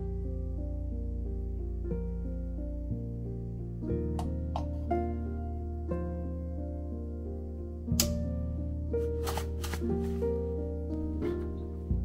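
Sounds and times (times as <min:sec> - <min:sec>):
soft piano background music: 0:00.0 - 0:12.0
sharp click: 0:08.0 - 0:08.2
paper packet rustling: 0:09.0 - 0:10.4.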